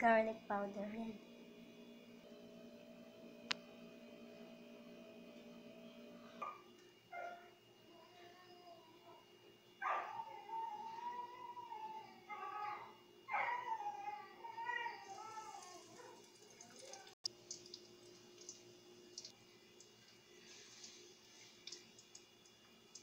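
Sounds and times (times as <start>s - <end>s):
hot oil crackling: 15.4s - 23.0s.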